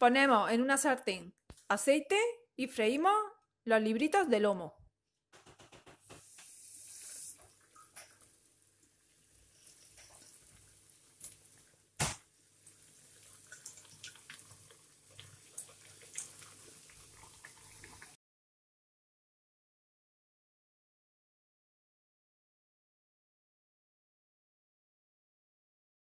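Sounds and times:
meat sizzling in oil: 6.0 - 18.2.

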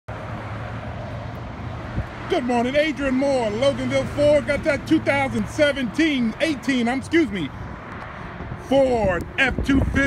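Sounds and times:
outdoor noise: 0.1 - 10.0
vehicle engine humming: 0.1 - 10.0.

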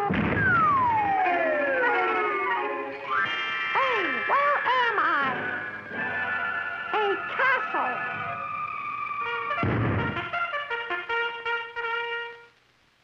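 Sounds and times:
sudden hit: 0.0 - 1.6, 9.5 - 10.4
background music: 0.0 - 12.6.

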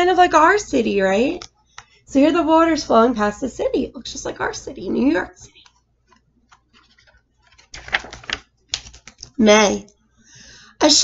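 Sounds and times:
book page turning: 5.5 - 9.4.

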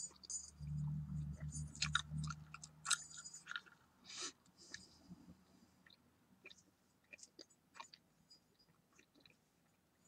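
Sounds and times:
low hum: 0.0 - 3.6.

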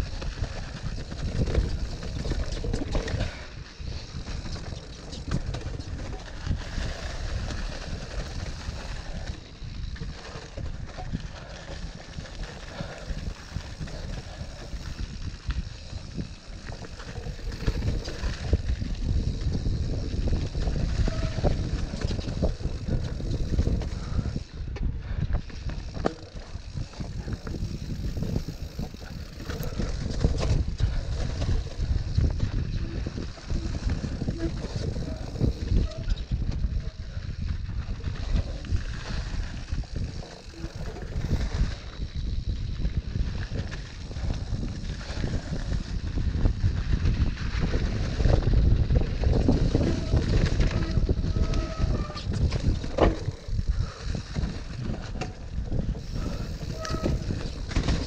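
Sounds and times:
bike rattling and knocking: 0.0 - 58.0
wind on microphone: 0.0 - 58.0.

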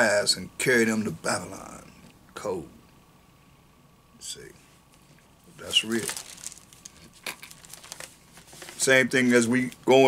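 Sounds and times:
man talking: 0.0 - 2.8, 4.2 - 4.6, 5.6 - 6.2, 8.8 - 10.0
paper pages crinkling: 5.6 - 10.0.

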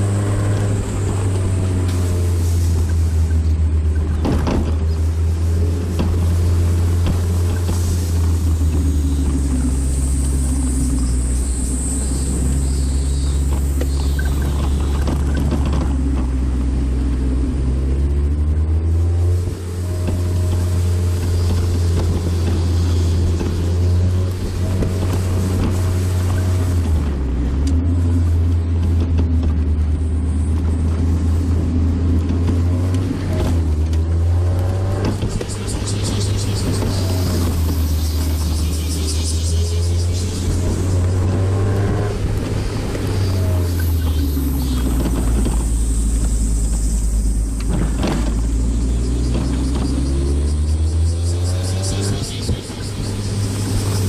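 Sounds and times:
car engine accelerating: 0.0 - 54.0
road noise: 0.0 - 54.0.

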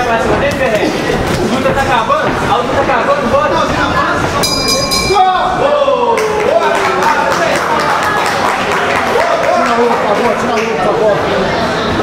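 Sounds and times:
high ringing tone: 4.4 - 5.4
people shouting: 5.1 - 7.3.

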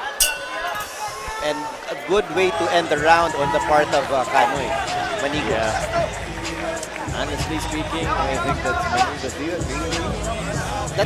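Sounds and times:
boxing ring bell clang: 0.0 - 1.9.

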